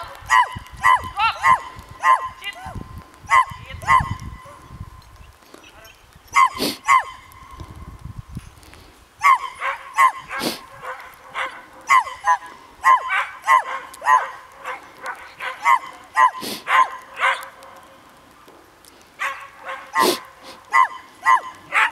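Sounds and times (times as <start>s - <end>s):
dog yipping: 0.2s - 2.4s, 3.3s - 4.2s, 6.3s - 7.3s, 9.2s - 17.6s, 19.2s - 21.9s.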